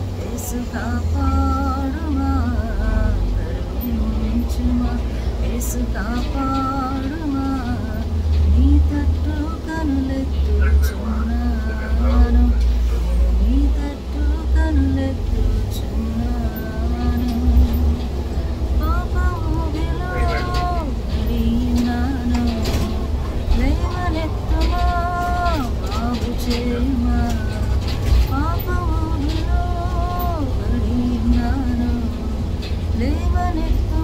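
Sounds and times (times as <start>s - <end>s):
bus engine and road rumble: 0.0s - 34.0s
woman singing softly: 0.0s - 34.0s.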